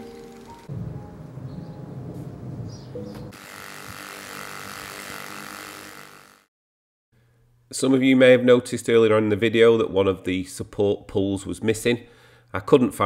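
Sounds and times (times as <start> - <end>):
polishing machine running: 3.3 - 6.5.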